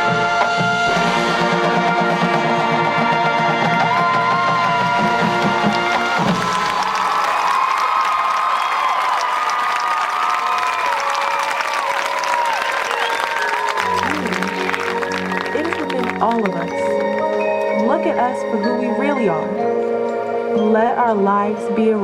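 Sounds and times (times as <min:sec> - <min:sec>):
crowd cheering and clapping: 0:03.3 - 0:17.7.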